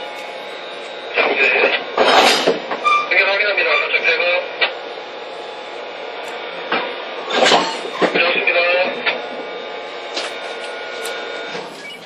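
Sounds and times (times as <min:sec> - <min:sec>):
locomotive blowers whining and humming: 0:00.0 - 0:12.0.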